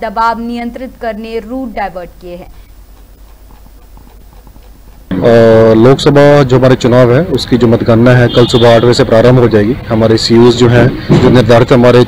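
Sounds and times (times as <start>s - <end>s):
steady low hum: 0.0s - 11.2s
soft scattered clicks: 2.2s - 5.1s.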